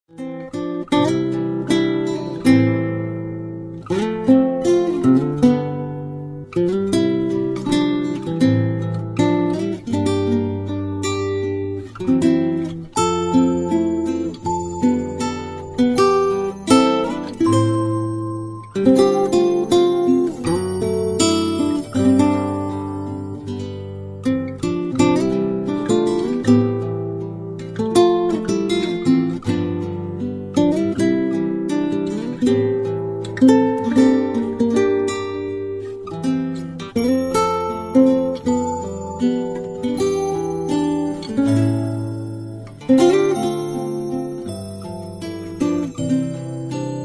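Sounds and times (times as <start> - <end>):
acoustic guitar strumming: 0.1 - 47.0.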